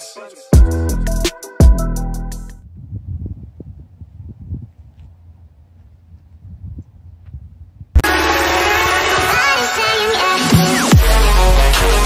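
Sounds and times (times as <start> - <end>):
electronic dance music: 0.0 - 2.5, 8.0 - 12.0
wind buffeting microphone: 2.6 - 8.0.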